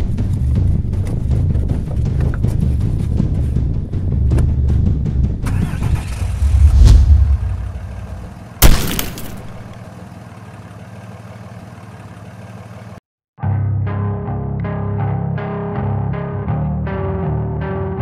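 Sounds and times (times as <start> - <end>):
dense low rumble: 5.6 - 9.8
low drone: 5.7 - 8.4
loud crash-like hit: 6.0 - 9.6.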